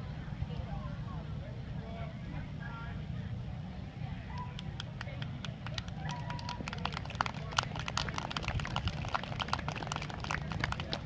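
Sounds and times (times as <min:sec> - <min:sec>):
faint voices talking: 0:00.0 - 0:11.0
low outdoor rumble: 0:00.0 - 0:11.0.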